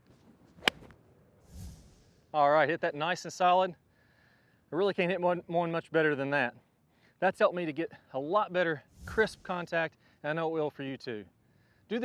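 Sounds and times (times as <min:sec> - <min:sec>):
golf iron striking ball: 0:00.6 - 0:00.9.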